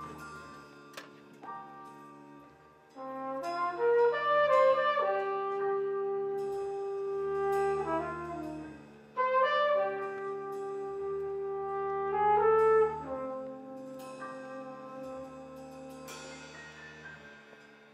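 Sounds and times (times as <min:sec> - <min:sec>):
big band brass chords: 0:00.0 - 0:17.9.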